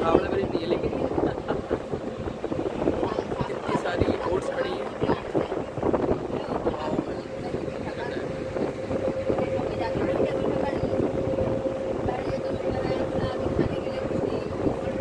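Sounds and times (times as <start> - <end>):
ferry engine humming: 0.0 - 15.0
wind on microphone: 0.0 - 15.0.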